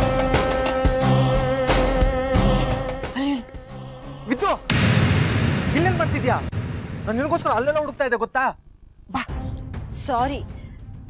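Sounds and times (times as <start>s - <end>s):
regular beat hits: 4.7s - 7.4s.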